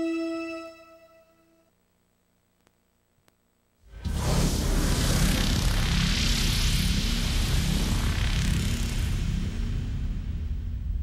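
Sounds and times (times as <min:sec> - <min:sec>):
deep rumble: 0:03.9 - 0:11.0.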